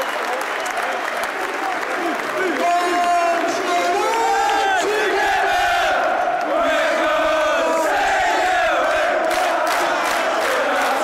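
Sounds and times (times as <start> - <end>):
stadium crowd chanting: 2.4 - 11.0.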